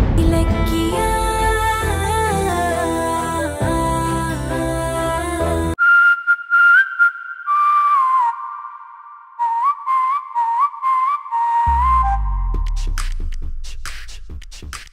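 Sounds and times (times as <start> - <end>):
bass-heavy music track: 0.0 - 5.8, 11.7 - 14.9
whistled melody: 5.7 - 13.0.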